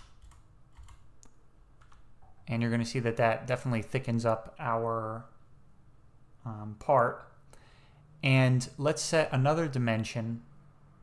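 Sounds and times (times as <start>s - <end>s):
keyboard keystrokes: 0.0s - 2.0s.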